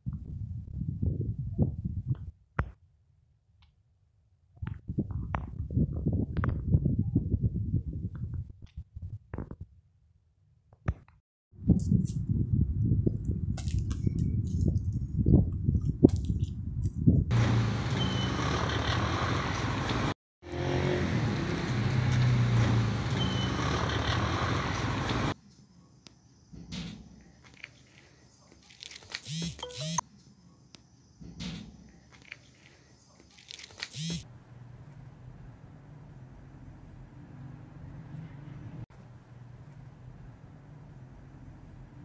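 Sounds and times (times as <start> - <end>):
microphone rumbling and crackling: 0.0 - 2.7, 4.6 - 9.7.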